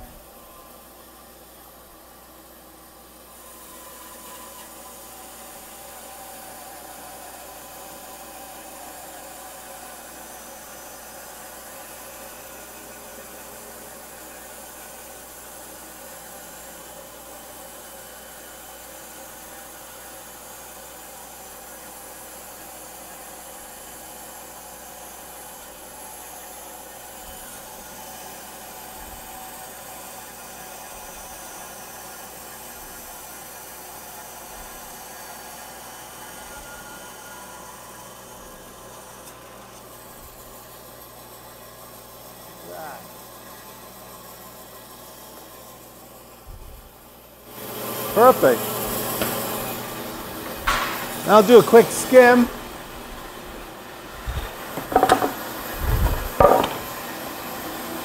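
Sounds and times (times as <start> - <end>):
dust collector rushing hiss: 47.5 - 57.4.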